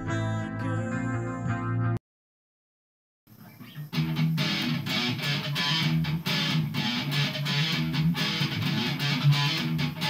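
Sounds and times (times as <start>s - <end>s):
electric guitar strumming: 3.4s - 10.0s.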